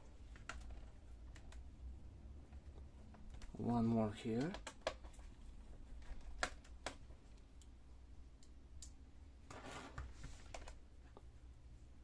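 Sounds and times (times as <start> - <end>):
clicks and taps on plastic case: 4.2 - 5.2
scrape on plastic case: 9.5 - 10.4.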